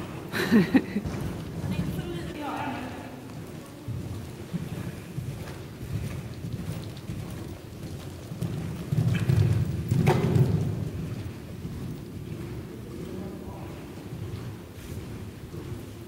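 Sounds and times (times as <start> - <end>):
horse hooves on sand: 0.0 - 16.0.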